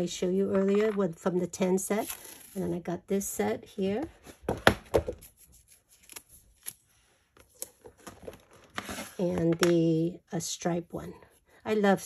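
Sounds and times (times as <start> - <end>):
tape being unrolled: 5.2 - 9.2.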